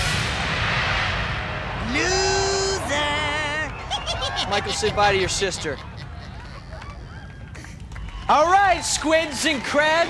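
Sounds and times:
stage fire whoosh: 0.0 - 3.9.

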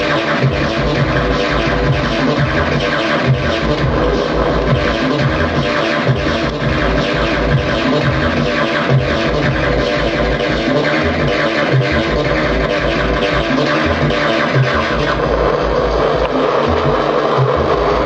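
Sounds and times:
buzzy square-wave synth tones: 0.0 - 18.0
electronic music gear: 0.0 - 18.0.

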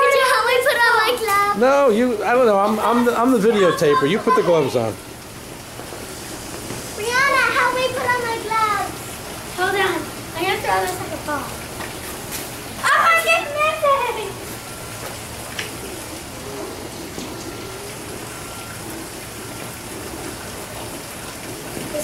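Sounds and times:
hiss of wet snow falling: 2.6 - 22.0
child's high-pitched cry: 3.4 - 4.8.

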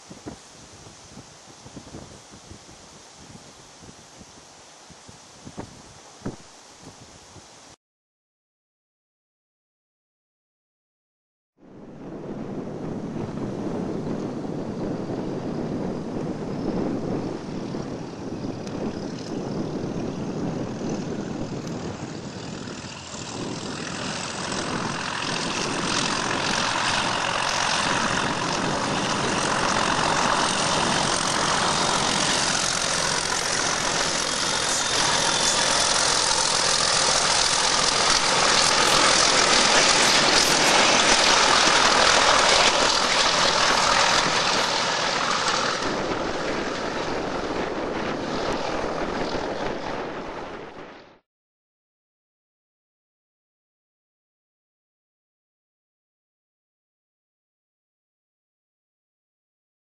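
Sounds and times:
diesel locomotives passing: 11.9 - 51.0.

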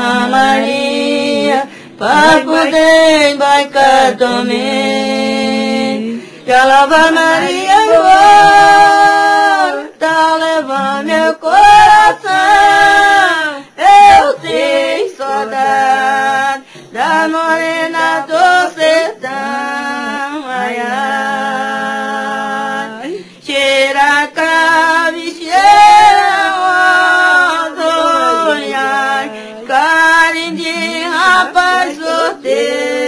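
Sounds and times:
women singing unaccompanied: 0.0 - 33.0.

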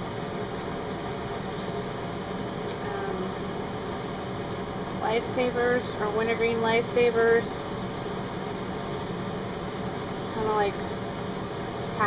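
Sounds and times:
fan-like hum and hiss: 0.0 - 12.0.

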